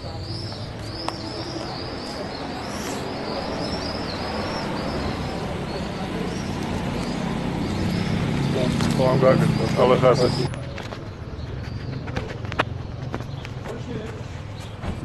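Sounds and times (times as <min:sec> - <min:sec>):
murmur of voices: 0:00.0 - 0:14.4
small birds chirping: 0:00.0 - 0:14.8
street noise: 0:00.0 - 0:15.0.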